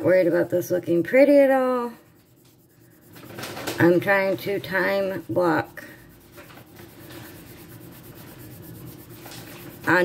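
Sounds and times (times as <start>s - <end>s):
colored pencil scratching on paper: 0.0s - 10.0s.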